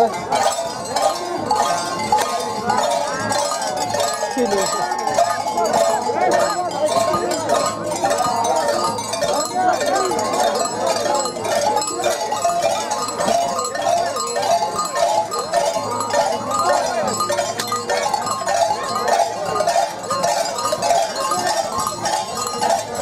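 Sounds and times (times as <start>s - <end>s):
bells jingling: 0.0s - 23.0s
crowd of voices: 0.0s - 23.0s
people singing: 1.1s - 13.4s.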